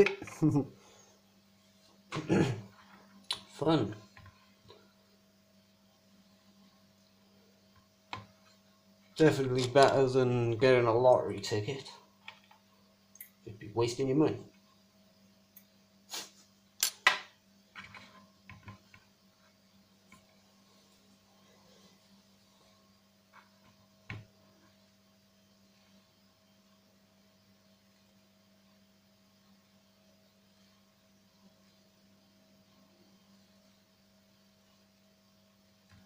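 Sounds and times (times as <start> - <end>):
faint steady hum: 0.0 - 36.0.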